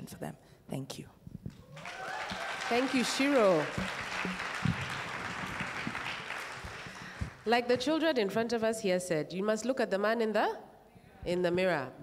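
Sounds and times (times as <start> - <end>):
audience applauding: 1.6 - 7.5.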